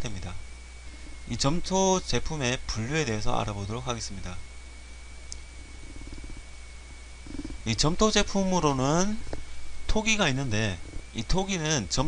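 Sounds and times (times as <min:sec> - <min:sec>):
faint high whine: 0:00.0 - 0:12.0
low electrical hum with hiss: 0:00.0 - 0:12.0.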